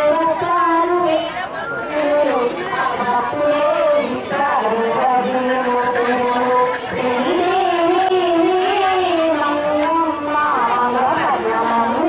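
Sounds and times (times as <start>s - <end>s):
murmur of chatter: 0.0s - 12.0s.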